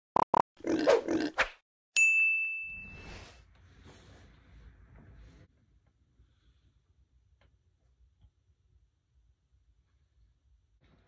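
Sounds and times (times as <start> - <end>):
grunting sound: 0.6 - 1.4
bell-like ding: 2.0 - 3.4.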